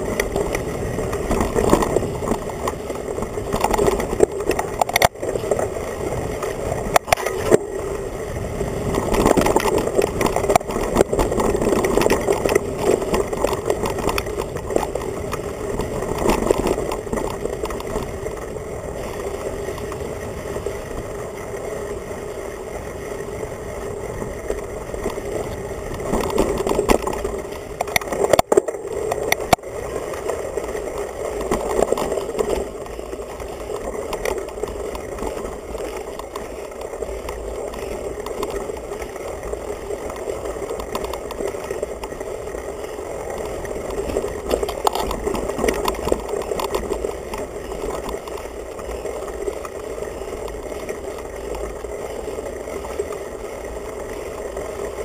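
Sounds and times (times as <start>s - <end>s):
bike frame and tyres rattling: 0.0s - 55.0s.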